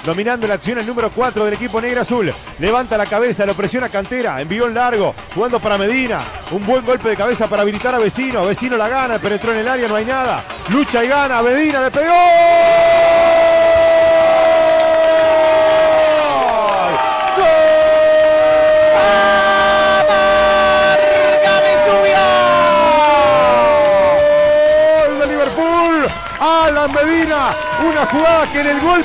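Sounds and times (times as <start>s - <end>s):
commentator speaking: 0.0s - 12.5s, 18.9s - 23.8s, 25.0s - 29.0s.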